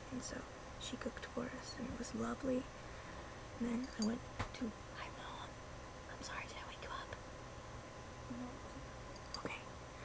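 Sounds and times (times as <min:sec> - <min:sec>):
woman whispering: 0:03.6 - 0:07.2, 0:09.4 - 0:09.8.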